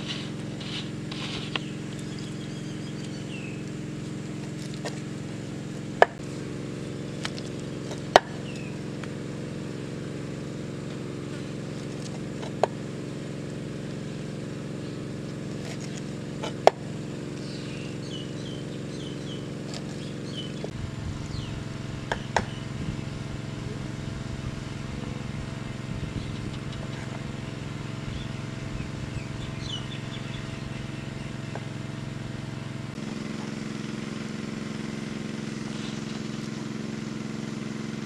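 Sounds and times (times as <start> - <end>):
steady motor hum: 0.0 - 38.0.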